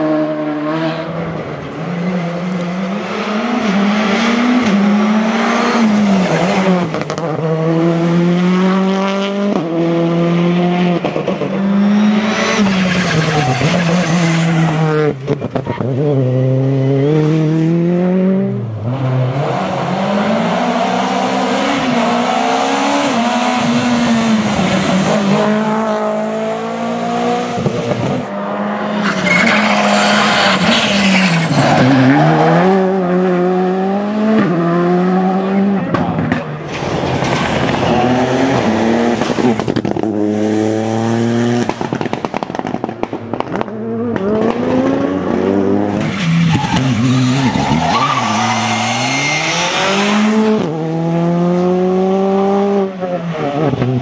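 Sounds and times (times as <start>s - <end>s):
rally cars revving past: 0.0s - 54.0s.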